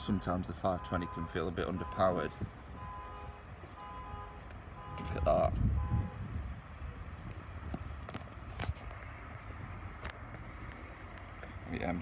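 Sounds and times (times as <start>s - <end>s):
wind rumble on microphone: 4.1s - 12.0s.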